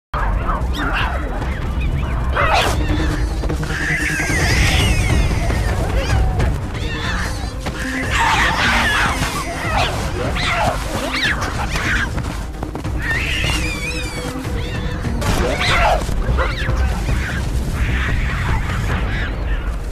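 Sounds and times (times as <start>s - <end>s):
background music with low beat: 0.2s - 19.9s
monkeys calling: 0.2s - 19.9s.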